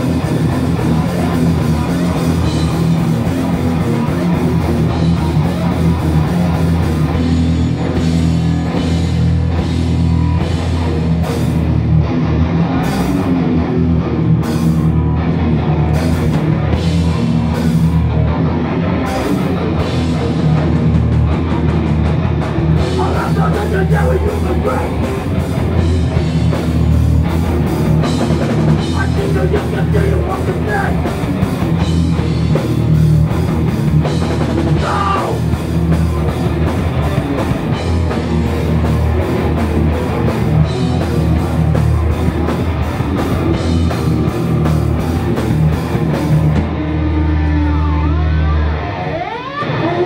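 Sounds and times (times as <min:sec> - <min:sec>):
pounding drum kit: 0:00.0 - 0:48.2
bass guitar: 0:00.0 - 0:50.0
distorted electric guitars: 0:00.0 - 0:50.0.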